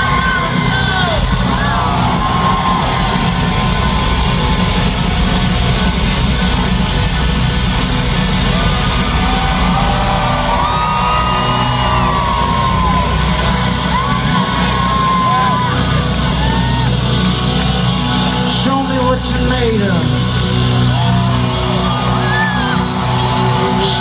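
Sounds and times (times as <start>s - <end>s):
crowd yelling: 0.0s - 24.0s
live rock band playing: 0.0s - 24.0s.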